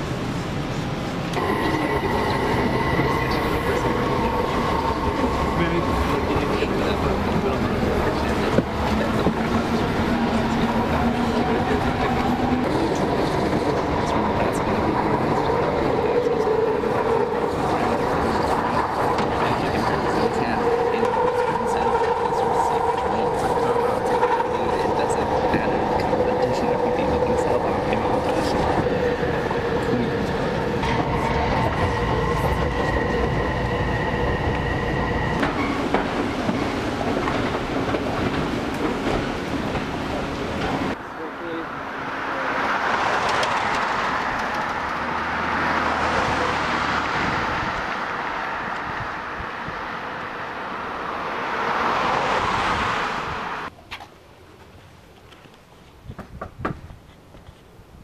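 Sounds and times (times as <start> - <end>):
train wheels rumbling on track: 0.0 - 53.7.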